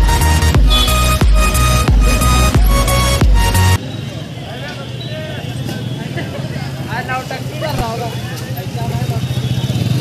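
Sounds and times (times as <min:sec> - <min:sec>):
motorcycle engines and traffic: 0:00.0 - 0:10.0
voices of passers-by: 0:00.0 - 0:10.0.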